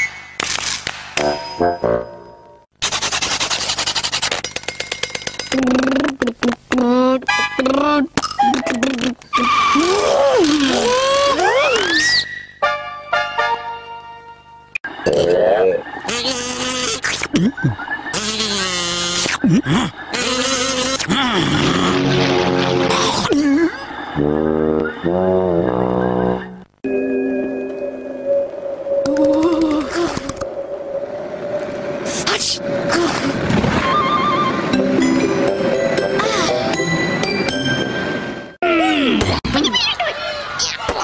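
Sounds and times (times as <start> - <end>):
cartoon character voice: 5.6 - 12.0.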